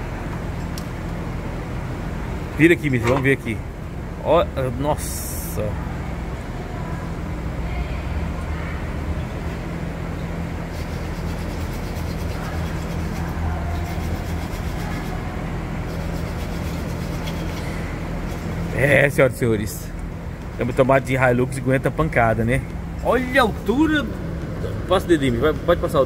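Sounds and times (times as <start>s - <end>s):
low mechanical hum: 0.0s - 26.0s.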